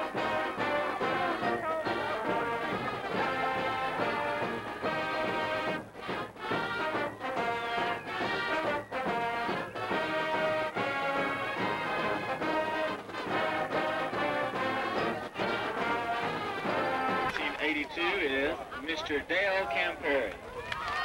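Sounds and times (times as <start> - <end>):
marching band playing: 0.0 - 20.0.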